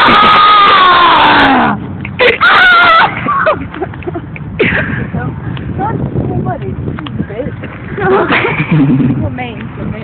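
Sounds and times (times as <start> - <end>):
child screaming: 0.0 - 1.6, 2.4 - 3.3.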